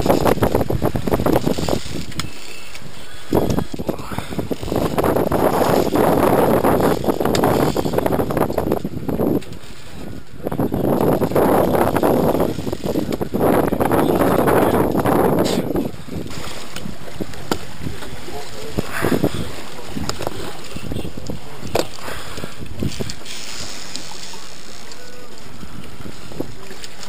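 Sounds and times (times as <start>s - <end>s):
fishing reel clicking: 1.2s - 10.0s, 11.0s - 13.4s, 22.3s - 25.1s.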